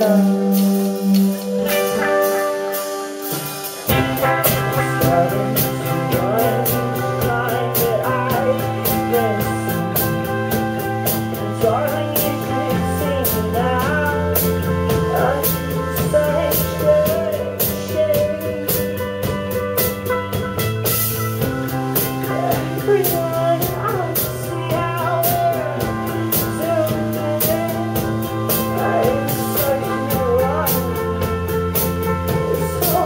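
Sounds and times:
bass guitar: 0.0 - 33.0
drums: 0.0 - 33.0
electric guitar: 0.0 - 33.0.

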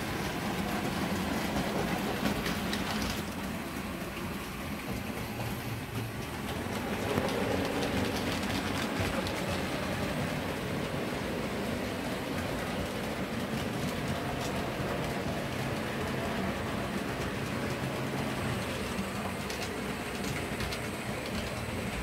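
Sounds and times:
model trains running on track: 0.0 - 22.0.

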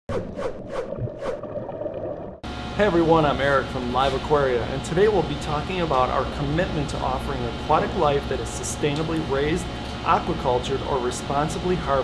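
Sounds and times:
low watery rumble: 0.6 - 2.5
gushes of bubbles: 0.9 - 2.4.

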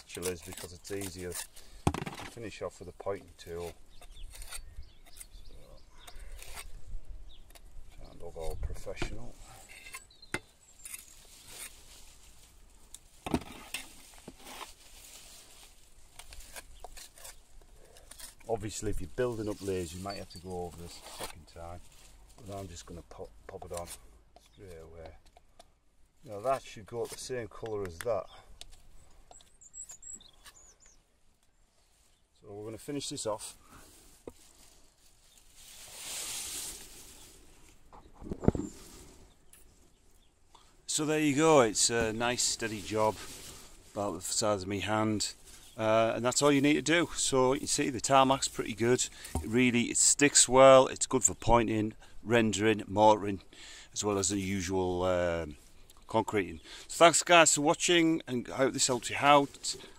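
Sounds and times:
tool scraping cement mortar: 0.0 - 2.4, 3.1 - 5.4, 6.0 - 6.8, 16.2 - 21.6.

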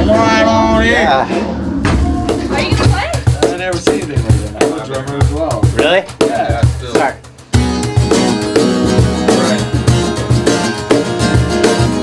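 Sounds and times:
people talking: 0.0 - 1.6, 2.3 - 7.2
drumstick low thumps: 0.9 - 11.9.

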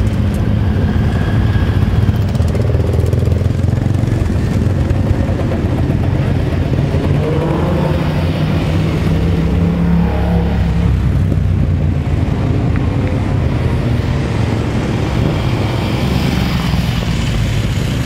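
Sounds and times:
motorcycle engines revving: 0.0 - 18.0.

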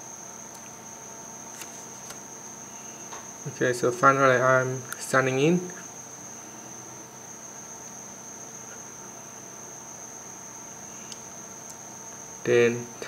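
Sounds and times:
high-pitched electrical whine: 0.0 - 13.0.

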